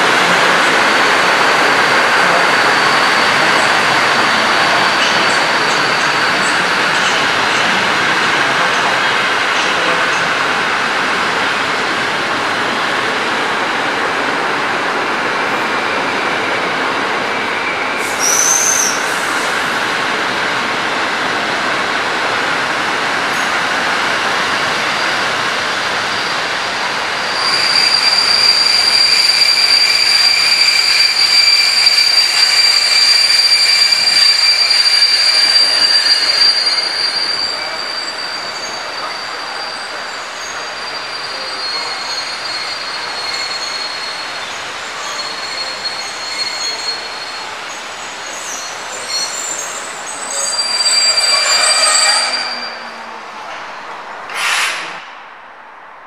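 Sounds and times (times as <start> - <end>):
steel wheels squealing on rails: 0.0 - 11.8, 12.6 - 20.0, 22.9 - 55.3
train coaches rolling: 0.0 - 56.0.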